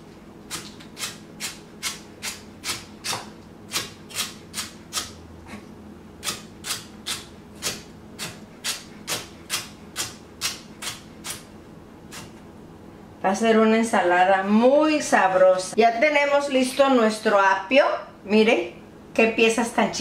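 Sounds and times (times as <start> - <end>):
knife chopping on wooden board: 0.5 - 5.2, 6.2 - 11.4.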